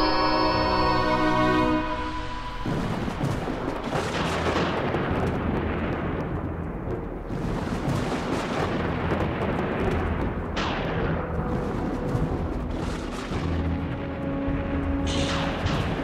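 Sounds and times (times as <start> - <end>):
held musical tone: 0.0 - 3.2
crackling rumble with explosions: 2.0 - 16.0.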